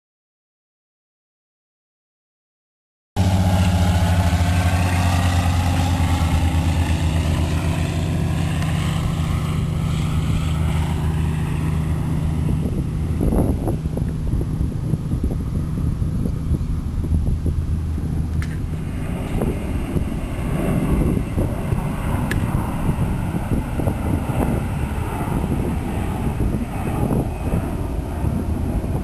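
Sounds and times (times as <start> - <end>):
airplane engine drone: 3.2 - 29.0
wind gusts on microphone: 3.2 - 29.0.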